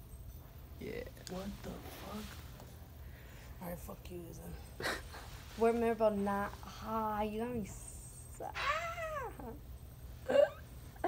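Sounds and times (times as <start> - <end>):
person squealing: 8.6 - 9.6.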